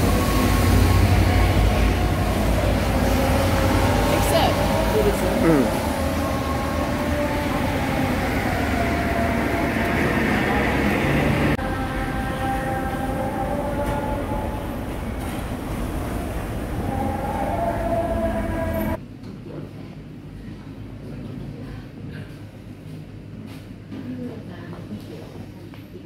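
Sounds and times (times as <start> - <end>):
traffic on wet road: 0.0 - 19.0.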